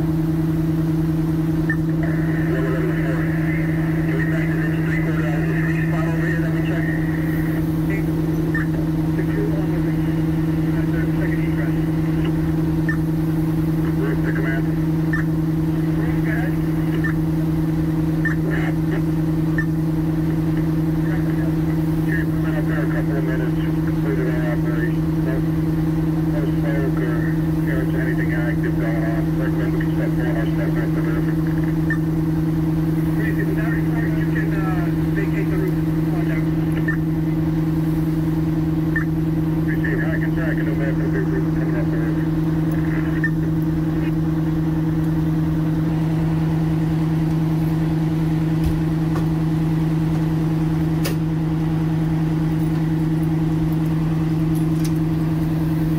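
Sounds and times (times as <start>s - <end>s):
diesel engines running: 0.0s - 55.9s
people talking: 2.0s - 12.5s, 13.8s - 14.8s, 15.8s - 17.2s, 18.2s - 19.2s, 20.5s - 31.9s, 33.2s - 37.4s, 39.6s - 44.2s.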